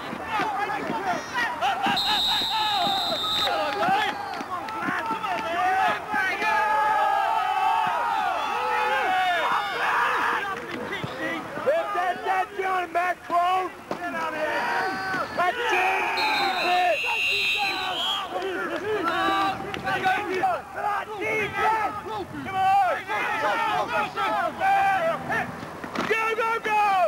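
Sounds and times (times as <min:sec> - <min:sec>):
people talking and calling out: 0:00.0 - 0:27.0
steady high whistle: 0:01.9 - 0:04.3, 0:16.2 - 0:18.3.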